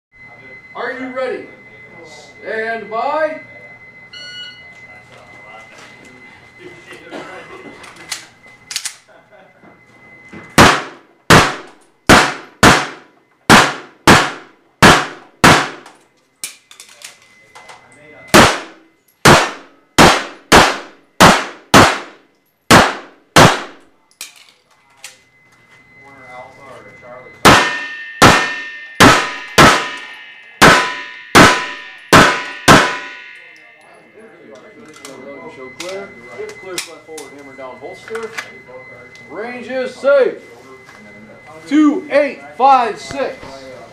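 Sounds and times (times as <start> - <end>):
shot timer beep: 0.2 - 5.4, 25.9 - 40.3
pistol shots with echo: 10.6 - 16.0, 18.3 - 23.9, 27.4 - 33.7.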